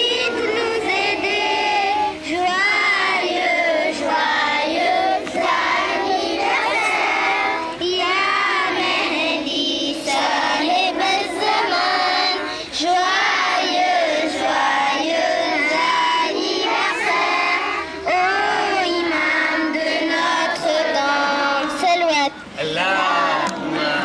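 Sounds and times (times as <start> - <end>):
children singing devotional song: 0.0 - 24.0.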